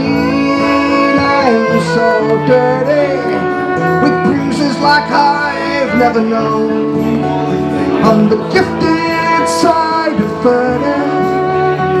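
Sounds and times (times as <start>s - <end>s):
guitars strumming chords: 0.0s - 12.0s
man singing: 0.0s - 12.0s.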